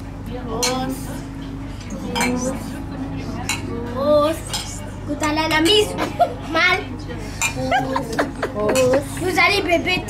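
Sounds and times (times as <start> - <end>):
voices: 0.1 - 10.0
glasses clinking: 1.8 - 2.5.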